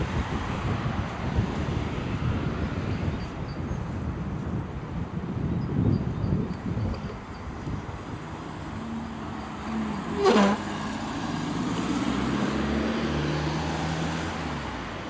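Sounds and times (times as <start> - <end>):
road traffic: 0.0 - 15.0
car passing: 8.0 - 15.0.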